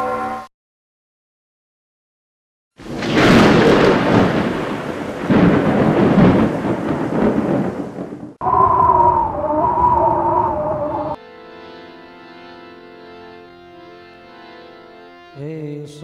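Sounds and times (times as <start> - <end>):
thunder rumbling: 2.8 - 11.2
wavering held chord: 10.9 - 15.8.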